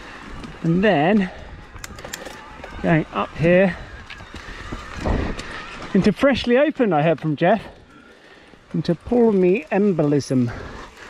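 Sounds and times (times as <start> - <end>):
bike tyres on dirt trail: 0.0 - 11.0
bike knocking and rattling: 0.3 - 11.0.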